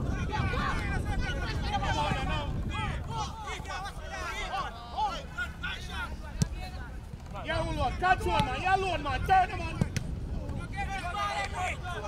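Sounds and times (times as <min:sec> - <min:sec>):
voices calling and talking: 0:00.0 - 0:12.0.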